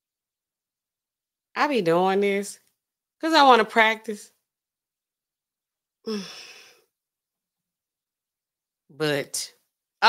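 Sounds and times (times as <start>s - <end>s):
woman sighing: 6.0s - 6.9s.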